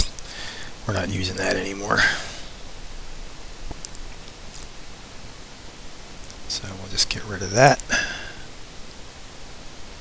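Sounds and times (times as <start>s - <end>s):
background hiss: 0.0s - 10.0s
man speaking: 0.8s - 2.4s, 6.5s - 8.2s.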